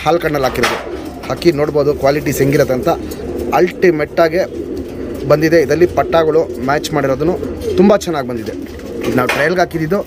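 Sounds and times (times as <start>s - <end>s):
man speaking: 0.0s - 10.0s
pigeons cooing: 0.0s - 10.0s.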